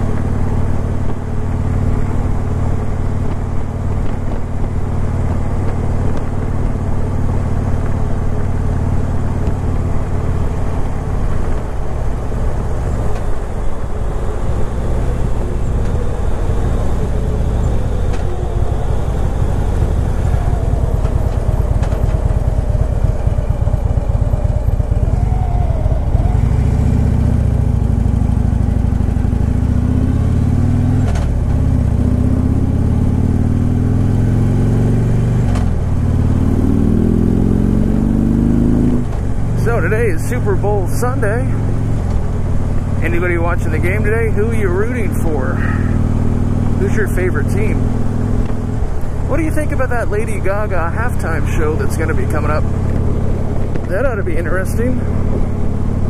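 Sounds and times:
motorcycle engine accelerating: 0:00.0 - 0:56.0
wind rushing over microphone: 0:09.3 - 0:29.3.

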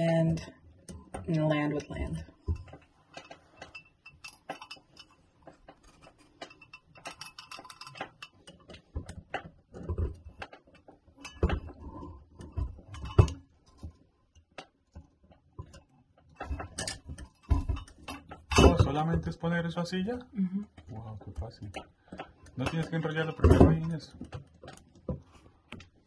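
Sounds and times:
metallic rattles: 0:00.2 - 0:13.9
small clicks and taps: 0:00.4 - 0:18.6, 0:20.6 - 0:26.0.

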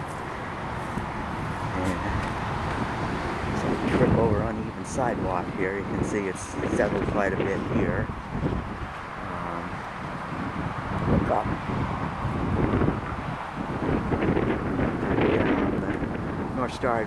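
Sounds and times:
road traffic: 0:00.0 - 0:17.0
wind buffeting microphone: 0:00.0 - 0:17.0.

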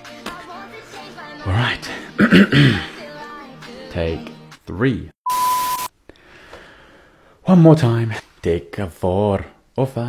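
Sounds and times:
high steady beep: 0:05.2 - 0:05.9.

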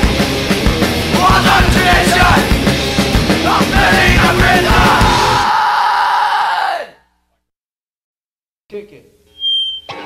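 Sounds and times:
punk rock song: 0:00.0 - 0:05.6
yelled vocals: 0:00.8 - 0:07.1.

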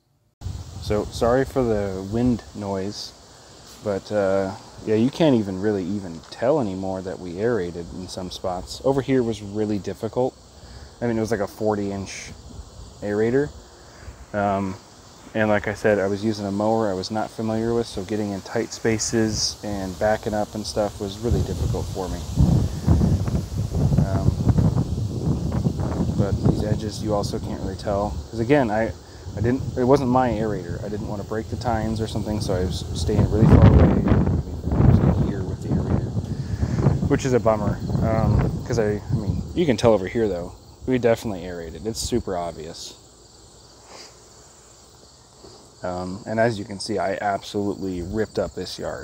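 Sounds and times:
crickets chirring: 0:00.0 - 0:49.0
wind rumble on microphone: 0:00.4 - 0:02.7, 0:18.7 - 0:40.7
wind gusting across microphone: 0:00.4 - 0:49.0.

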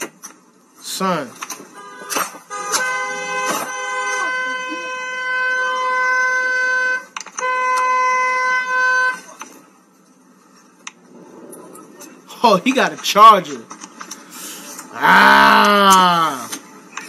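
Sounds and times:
car horn blasts: 0:01.7 - 0:09.4.

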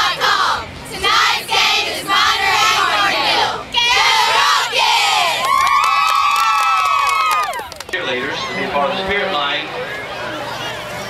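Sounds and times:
cheerleaders shouting and cheering: 0:00.0 - 0:09.0.

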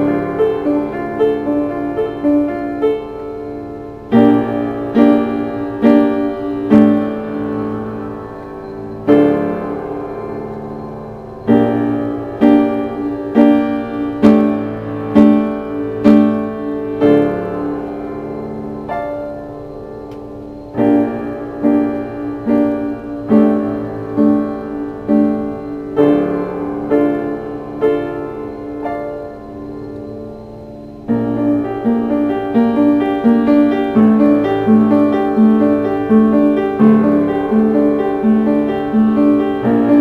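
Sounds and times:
slow dark piano chords: 0:00.0 - 0:40.0.

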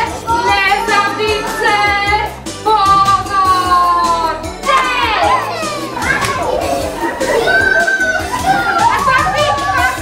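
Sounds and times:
children shouting: 0:00.0 - 0:02.0, 0:04.6 - 0:10.0
children's music with a beat: 0:00.0 - 0:10.0.

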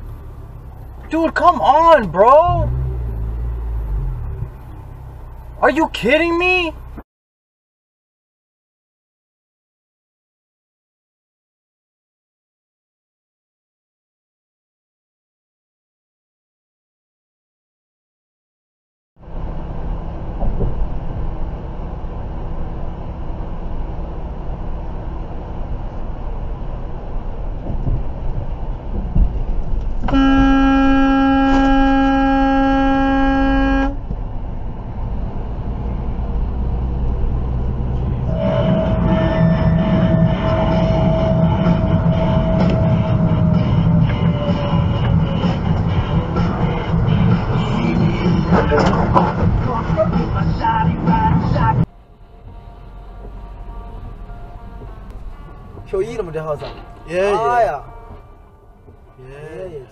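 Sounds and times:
road rumble inside truck cab: 0:00.0 - 0:07.0, 0:19.2 - 0:59.9
vehicle horn blast: 0:30.1 - 0:34.0, 0:38.2 - 0:44.1, 0:56.6 - 0:58.7.

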